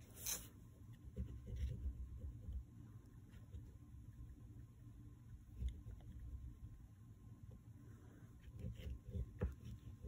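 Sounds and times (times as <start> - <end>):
oil pastel scraping paper: 0.0 - 0.6.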